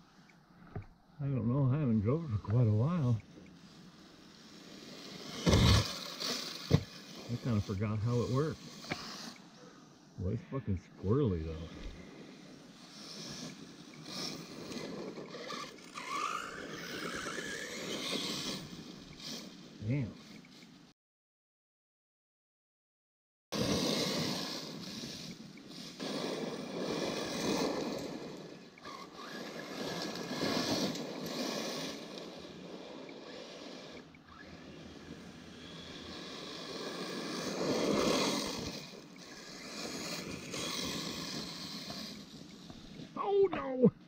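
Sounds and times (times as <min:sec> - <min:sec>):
rc car motor and tyres: 0:00.0 - 0:20.9, 0:23.6 - 0:44.0.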